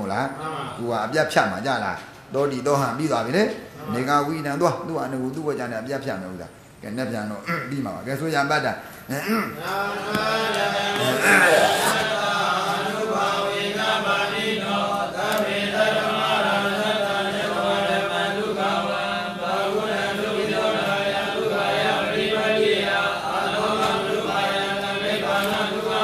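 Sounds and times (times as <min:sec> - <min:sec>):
man chanting: 0:02.4 - 0:12.5
man clearing throat: 0:09.1 - 0:09.6, 0:11.0 - 0:12.2.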